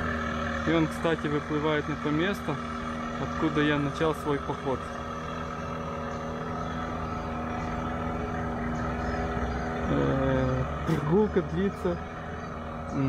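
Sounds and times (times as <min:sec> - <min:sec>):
boat motor humming: 0:00.0 - 0:13.0.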